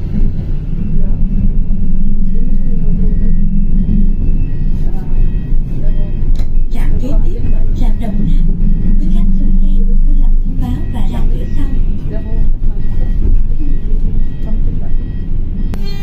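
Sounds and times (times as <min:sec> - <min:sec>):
bus engine humming: 0:00.0 - 0:16.0
indistinct voices: 0:00.0 - 0:16.0.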